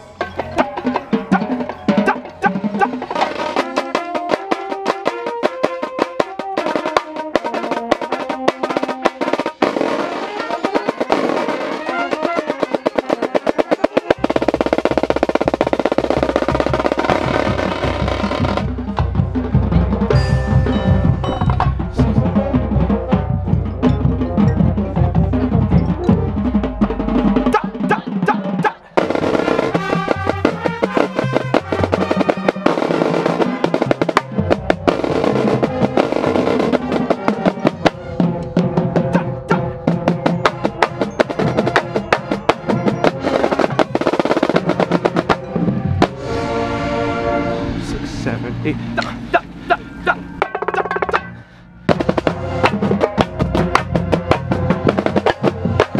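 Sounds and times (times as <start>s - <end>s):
tenor drums: 0.0s - 55.9s
marching snare drum: 0.6s - 46.2s, 51.9s - 55.9s.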